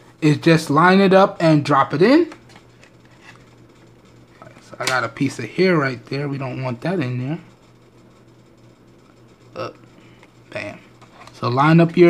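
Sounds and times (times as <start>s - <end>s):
man speaking: 0.2s - 2.4s, 4.4s - 7.5s, 9.6s - 9.8s, 10.5s - 12.0s.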